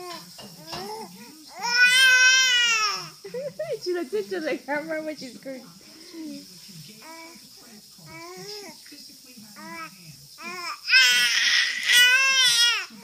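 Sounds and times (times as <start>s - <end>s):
baby babbling: 0.6s - 3.1s, 9.6s - 12.9s
baby screaming: 10.4s - 12.9s.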